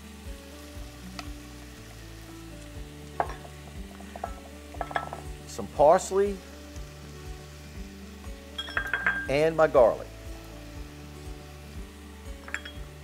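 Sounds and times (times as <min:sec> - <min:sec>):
vegetables sizzling in a pot: 0:00.0 - 0:13.0.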